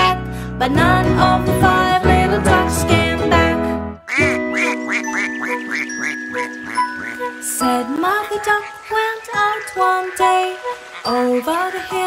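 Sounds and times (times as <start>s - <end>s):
sung music: 0.6s - 12.0s
cartoon duck quacks: 4.1s - 7.2s.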